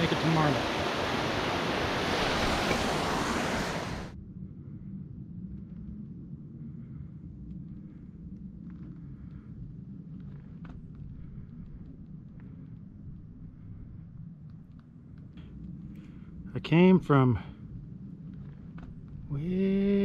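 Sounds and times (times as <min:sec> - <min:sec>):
stream rushing over rocks: 0:00.0 - 0:04.1
low wind rumble: 0:00.0 - 0:20.0.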